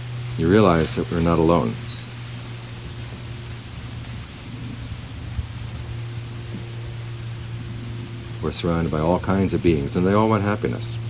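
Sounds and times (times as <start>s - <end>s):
low even hum: 0.0s - 11.0s
steady background hiss: 0.0s - 11.0s.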